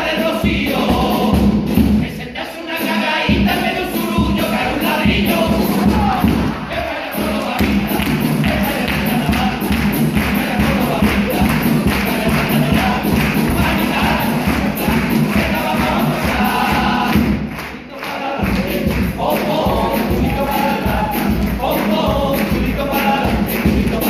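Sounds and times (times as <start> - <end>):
bass drum and snare rhythm: 0.0 - 24.0
group singing: 0.0 - 24.0.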